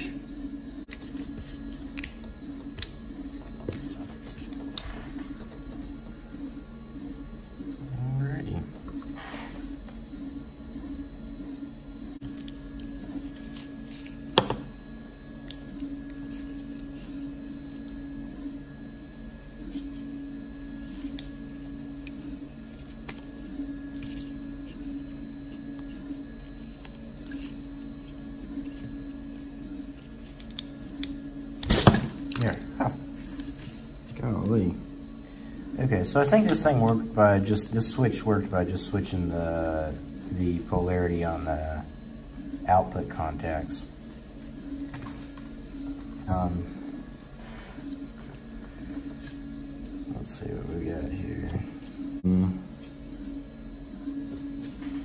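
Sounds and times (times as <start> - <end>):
steady low hum: 0.0 - 55.0.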